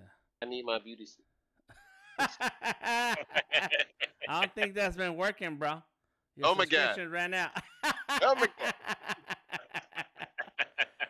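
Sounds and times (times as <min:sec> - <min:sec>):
hearty breathy laughter: 0:01.8 - 0:04.3.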